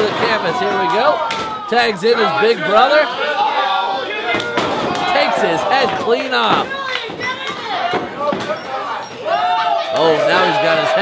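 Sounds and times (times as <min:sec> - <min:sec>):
crowd noise in a hall: 0:00.0 - 0:11.0.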